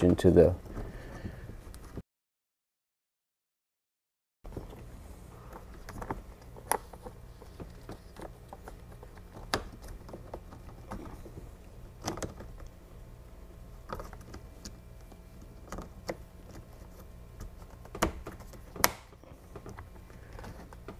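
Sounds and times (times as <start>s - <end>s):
low steady hum: 0.0s - 2.0s, 4.5s - 20.9s.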